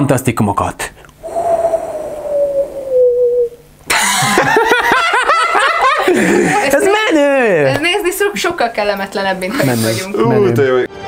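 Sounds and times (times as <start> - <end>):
held tone falling in pitch: 1.3 - 3.6.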